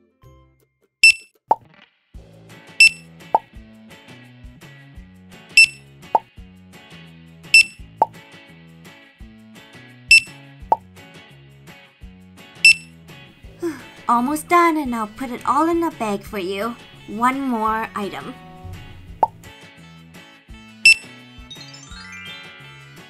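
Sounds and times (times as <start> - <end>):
checkout scanner beeps: 1.0 - 1.2, 5.6 - 5.8, 7.6 - 7.8, 10.1 - 10.3, 20.9 - 21.1
light background music: 2.2 - 23.0.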